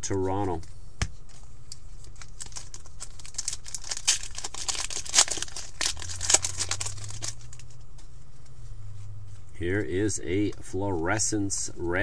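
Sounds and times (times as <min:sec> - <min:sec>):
card pack wrapper crackling: 0:02.0 - 0:07.8.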